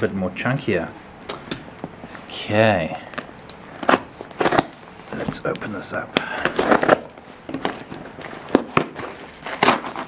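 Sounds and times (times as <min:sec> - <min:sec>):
packing tape and cardboard crackling: 0:03.2 - 0:10.0.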